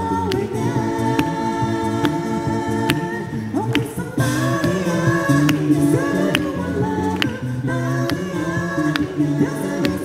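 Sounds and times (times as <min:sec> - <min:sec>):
group singing a cappella chord: 0:00.0 - 0:10.0
vocal percussion hits: 0:00.0 - 0:10.0.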